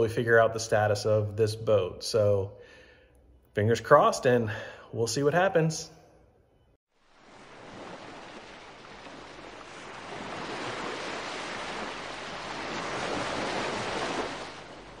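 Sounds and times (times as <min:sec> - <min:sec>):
surf washing on a beach: 0:07.0 - 0:15.0.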